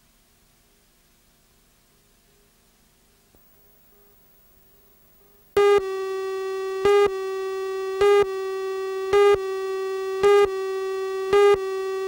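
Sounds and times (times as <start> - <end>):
steady buzzy electronic tone: 5.5 - 12.0
electronic beeps: 5.6 - 12.0.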